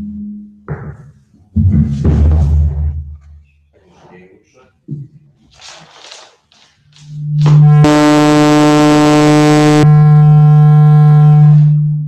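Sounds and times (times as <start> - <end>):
loud steady held tone: 7.1 - 12.0.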